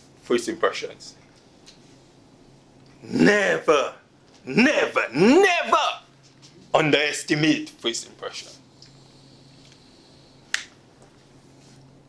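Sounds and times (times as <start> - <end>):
faint low hum: 0.0 - 12.0
sharp snap: 10.5 - 10.8.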